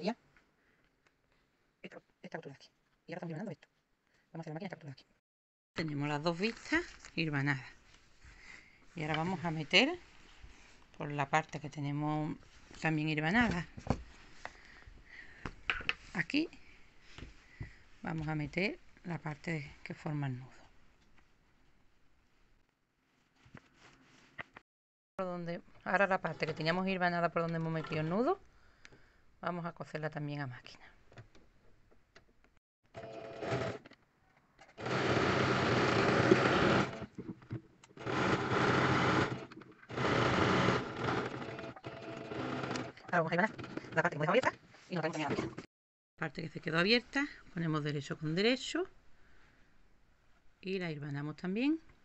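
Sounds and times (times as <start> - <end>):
fabric rustling: 21.2 - 24.6
sewing machine stitching: 33.0 - 33.9, 34.7 - 37.2, 38.0 - 44.0.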